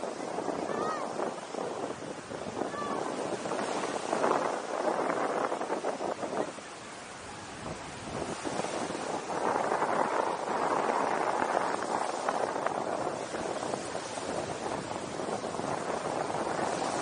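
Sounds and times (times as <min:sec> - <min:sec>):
surf washing on beach: 0:00.0 - 0:17.0
wind buffeting microphone: 0:00.0 - 0:17.0.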